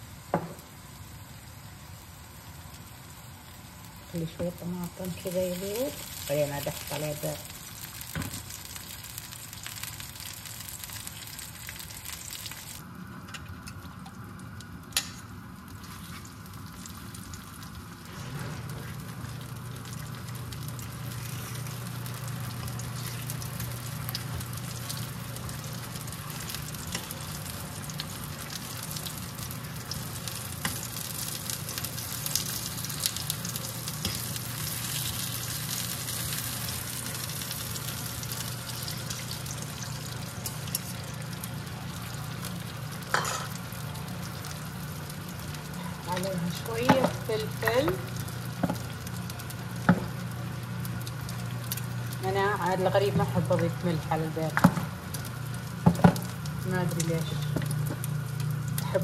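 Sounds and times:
steady low hum: 0:00.0 - 0:59.0
tomato slices sizzling in oil: 0:00.0 - 0:59.0.

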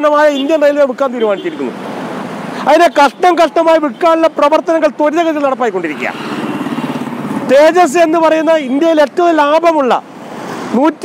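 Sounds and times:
man's voice: 0:00.0 - 0:01.7, 0:07.5 - 0:10.1.

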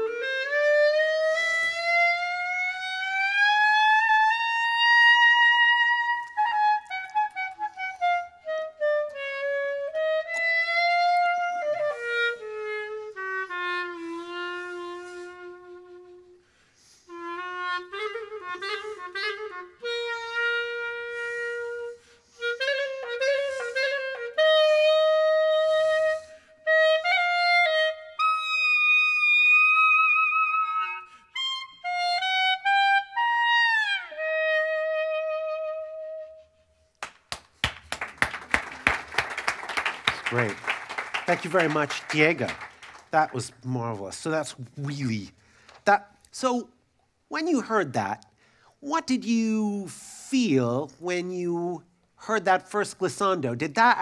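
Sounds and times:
solo clarinet melody: 0:00.0 - 0:36.9, 0:38.8 - 0:40.6
audience applause: 0:37.0 - 0:43.6.

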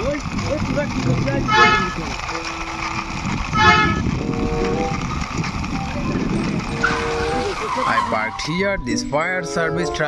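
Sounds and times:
toy truck rumbling on concrete: 0:00.0 - 0:08.6
short steady tones: 0:01.4 - 0:05.0.

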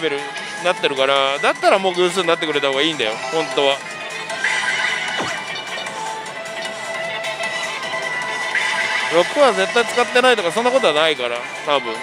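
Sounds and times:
falling electronic swoop: 0:05.2 - 0:06.0
electronic sound effects: 0:05.2 - 0:06.2
slot machine music: 0:05.2 - 0:07.4.

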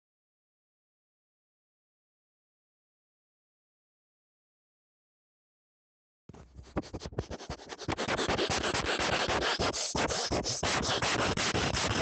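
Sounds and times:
person sniffing rapidly: 0:06.7 - 0:12.0.

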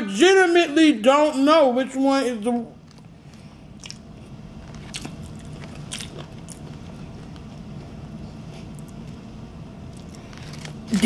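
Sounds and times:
low steady hum: 0:00.0 - 0:11.0
person chewing food: 0:02.8 - 0:07.6, 0:09.8 - 0:10.8
wet mouth clicks: 0:03.8 - 0:04.1.

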